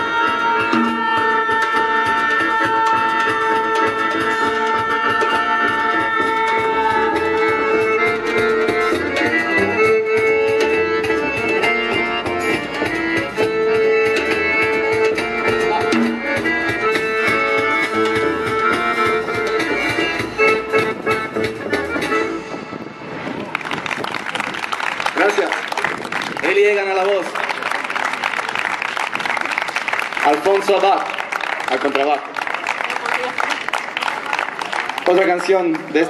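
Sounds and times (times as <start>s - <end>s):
hand drum percussion: 0.0s - 22.2s
people clapping: 0.8s - 7.4s, 23.4s - 36.0s
accordion: 2.0s - 23.2s
double bass: 3.2s - 22.5s.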